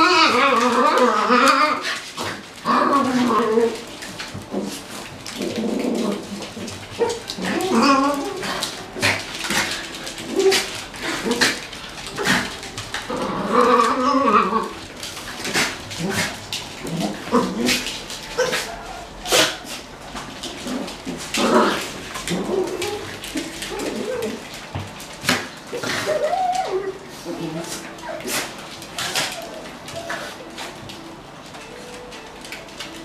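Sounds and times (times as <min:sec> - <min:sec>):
claws clicking on hard floor: 0:00.0 - 0:33.0
dogs growling and whining: 0:00.0 - 0:33.0.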